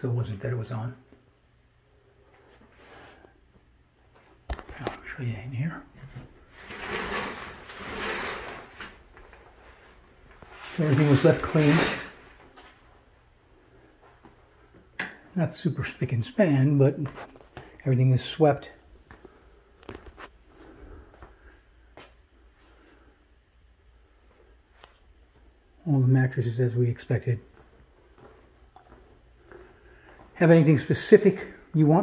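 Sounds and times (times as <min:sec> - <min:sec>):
shower curtain hooks sliding: 0:06.6 - 0:09.0, 0:10.9 - 0:12.3
footsteps on a hard floor: 0:27.5 - 0:30.4.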